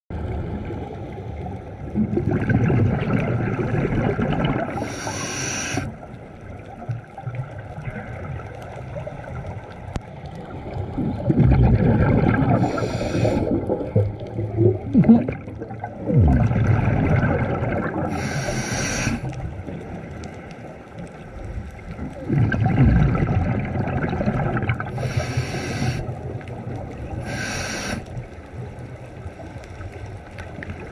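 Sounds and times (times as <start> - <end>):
regulator inhalation hiss: 4.8 - 5.9, 12.6 - 13.6, 18.1 - 19.3, 24.9 - 26.1, 27.2 - 28.2
low underwater rumble: 5.9 - 27.3.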